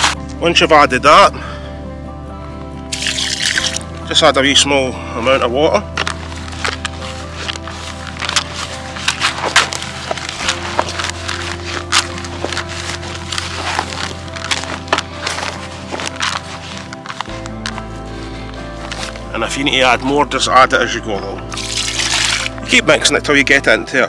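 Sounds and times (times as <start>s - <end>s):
hands kneading damp groundbait: 0.0s - 0.4s, 2.9s - 4.6s, 5.5s - 20.4s, 21.5s - 23.2s
background music with bass line: 0.0s - 24.0s.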